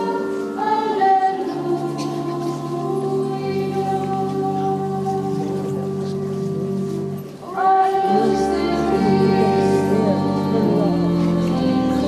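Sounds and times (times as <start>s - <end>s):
choir and congregation singing hymn: 0.0s - 12.0s.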